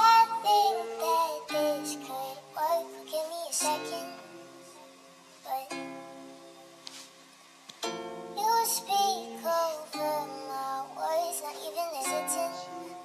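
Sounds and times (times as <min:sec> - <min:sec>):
person singing: 0:00.0 - 0:06.0, 0:08.3 - 0:13.0.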